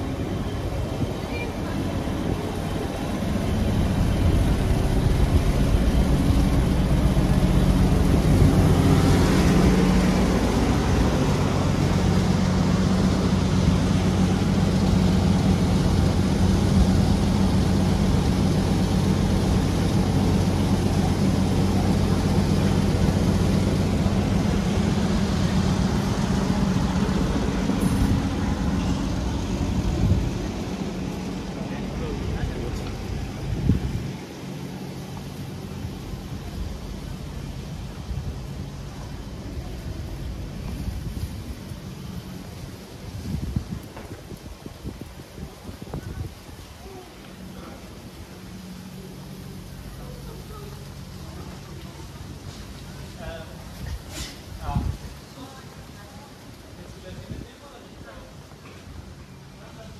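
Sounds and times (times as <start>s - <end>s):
truck engine idling: 0.0s - 59.9s.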